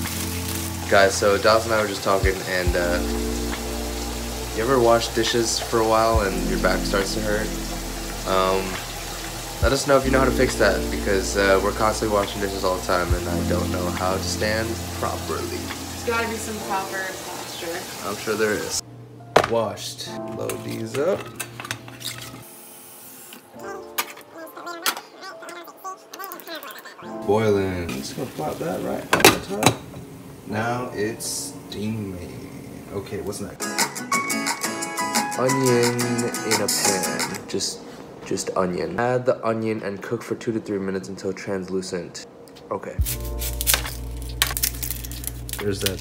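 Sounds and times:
soft background music: 0.0 - 46.0
music with low bass and held tones: 2.2 - 15.8.

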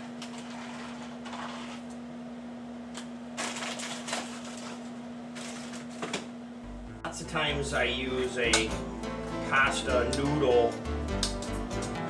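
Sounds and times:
paper packaging rustling: 3.4 - 6.2
steady low hum: 4.6 - 12.0.

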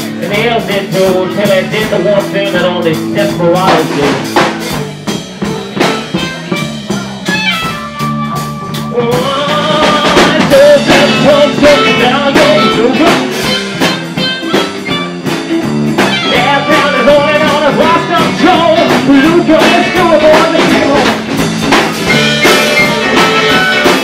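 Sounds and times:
bass guitar: 0.0 - 24.0
drum kit beat: 0.0 - 24.0
electric guitar: 0.0 - 24.0
wavering lead vocal: 8.8 - 13.6, 16.2 - 21.2.

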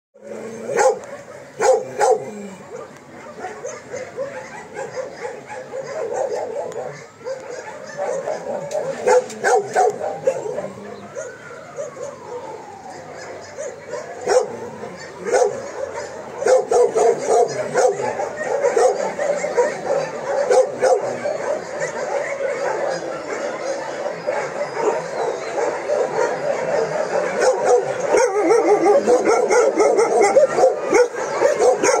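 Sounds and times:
many dogs barking and yipping: 0.2 - 32.0.

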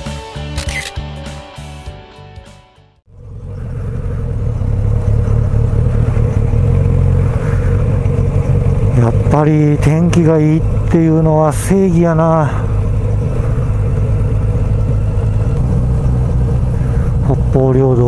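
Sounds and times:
background music: 0.0 - 2.9
motorcycle engine drone: 3.1 - 18.0
wind rumble: 3.2 - 18.0.

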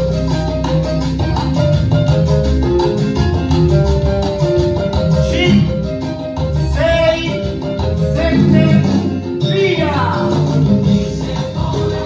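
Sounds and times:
salsa dance music: 0.0 - 12.0.

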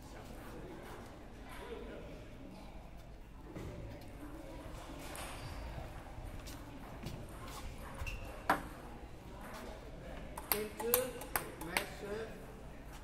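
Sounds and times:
table tennis ball bouncing: 10.4 - 12.0.

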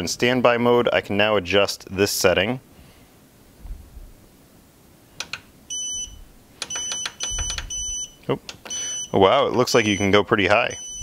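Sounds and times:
keypad beeping: 5.7 - 11.0.

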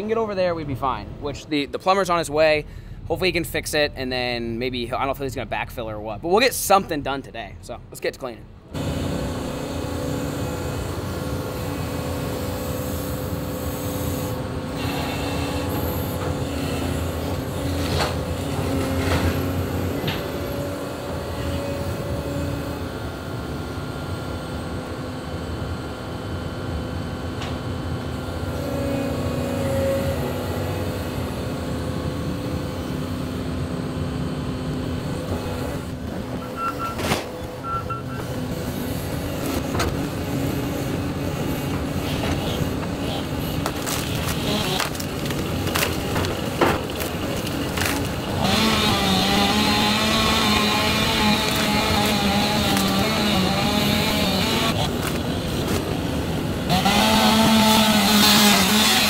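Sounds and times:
excavator engine and hydraulics humming: 0.0 - 59.0.

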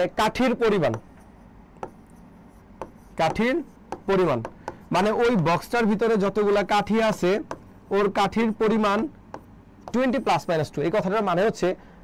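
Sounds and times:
pen tapping on writing board: 1.8 - 2.2, 2.8 - 4.9, 7.5 - 7.7, 9.3 - 10.1.

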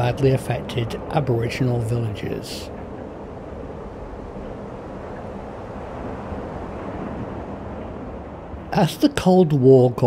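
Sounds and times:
low rumbling noise: 0.0 - 10.0.

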